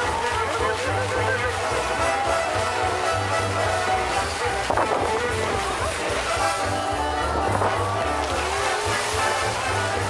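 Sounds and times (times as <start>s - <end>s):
rushing water jets and flames: 0.0s - 10.0s
show music with pulsing bass: 0.0s - 10.0s.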